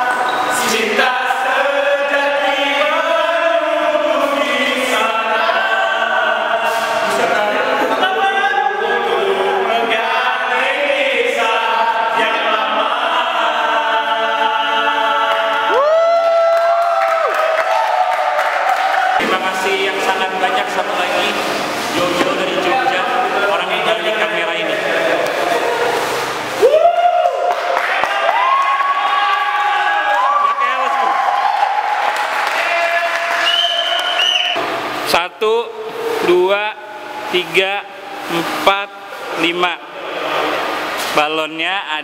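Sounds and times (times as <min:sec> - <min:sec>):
men singing in harmony: 0:00.0 - 0:15.8.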